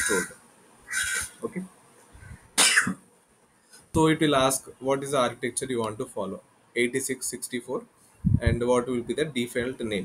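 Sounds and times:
person coughing: 0:02.6 - 0:03.0.

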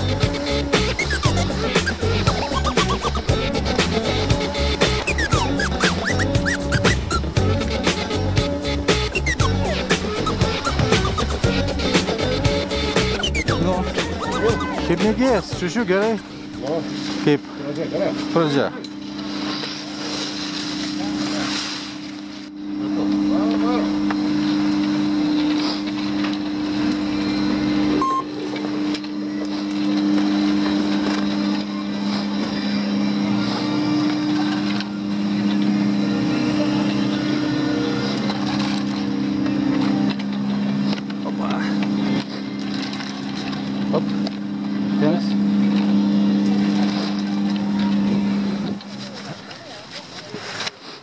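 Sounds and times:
lift machinery humming: 0:00.0 - 0:17.0.

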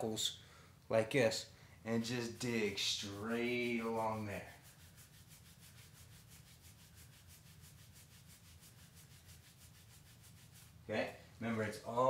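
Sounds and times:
low steady hum: 0:00.0 - 0:12.0
knuckles rubbing on clothing: 0:01.9 - 0:10.9.

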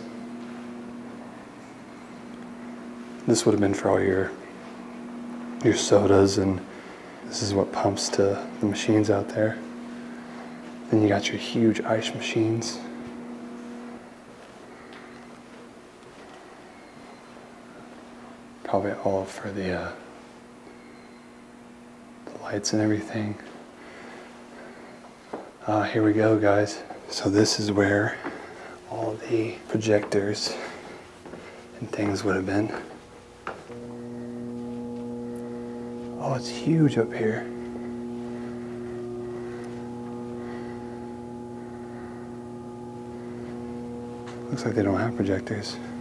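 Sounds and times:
low electrical hum: 0:00.0 - 0:46.0.

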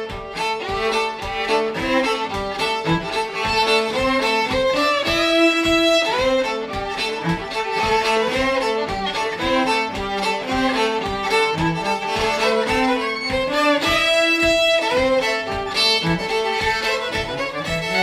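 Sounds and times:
cello bowing rhythmic backing: 0:00.0 - 0:18.0
fiddle melody: 0:00.0 - 0:18.0.

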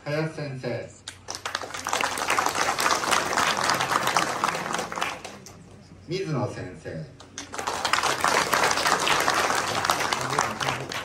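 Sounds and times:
crowd applauding: 0:01.2 - 0:05.7, 0:07.3 - 0:11.0.

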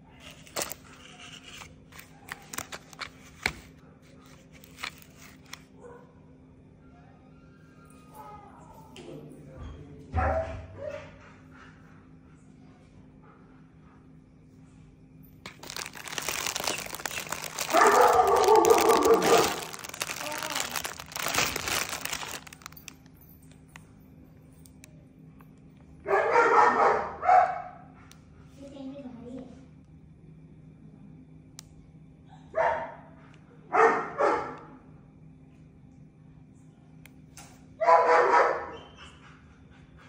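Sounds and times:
plastic packaging crinkling: 0:00.1 - 0:05.7, 0:15.4 - 0:23.8
dog barking: 0:05.8 - 0:06.2, 0:10.2 - 0:11.3, 0:17.6 - 0:19.7, 0:26.0 - 0:27.9, 0:32.5 - 0:34.8, 0:37.8 - 0:39.0.

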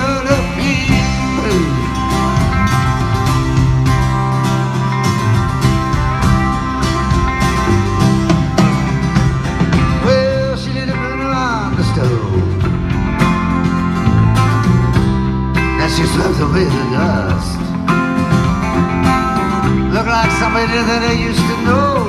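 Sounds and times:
live band playing: 0:00.0 - 0:22.0.

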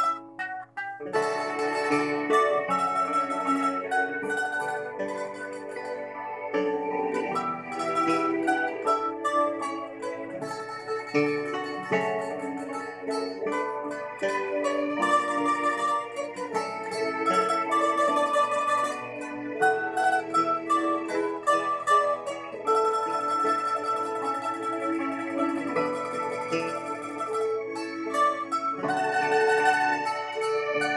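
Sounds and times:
plucked lute playing hymn melody: 0:00.0 - 0:30.9.

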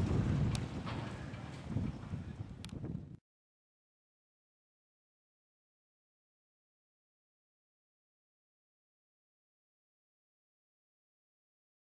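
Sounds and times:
wind rumbling on microphone: 0:00.0 - 0:03.2.

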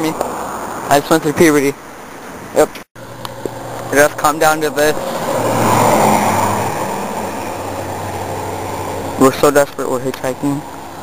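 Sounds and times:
car passing by: 0:03.0 - 0:09.7.

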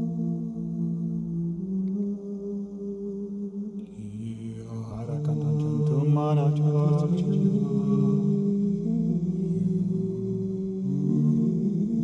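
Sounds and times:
looped vocal drones: 0:00.0 - 0:12.0
wavering wordless sung line: 0:00.0 - 0:12.0.

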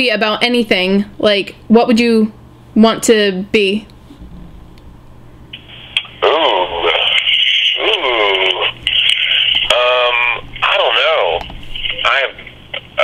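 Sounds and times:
voice over telephone: 0:06.2 - 0:12.5.

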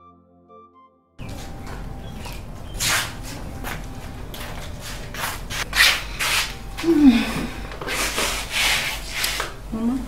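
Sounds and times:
sandals scuffing concrete: 0:01.2 - 0:06.9.

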